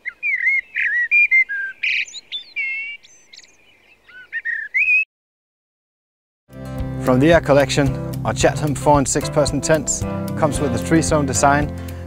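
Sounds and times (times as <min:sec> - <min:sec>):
birds singing: 0:00.0 - 0:05.1.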